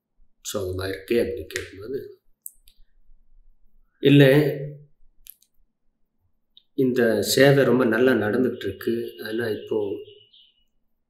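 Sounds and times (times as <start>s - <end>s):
man lecturing: 0.4s - 2.2s, 4.0s - 4.8s, 6.8s - 10.2s.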